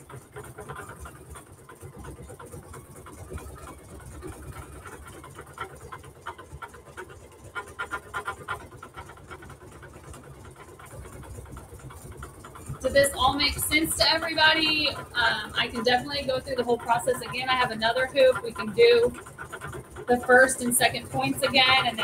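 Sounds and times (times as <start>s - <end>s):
embroidery machine stitching: 0.1s - 22.0s.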